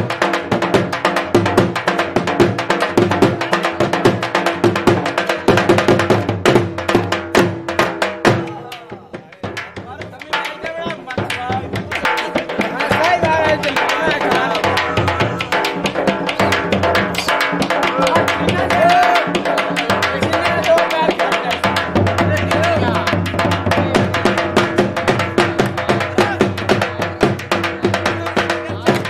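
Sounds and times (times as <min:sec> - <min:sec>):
dhol drums fast beat: 0:00.0 - 0:29.0
voices: 0:08.2 - 0:29.0.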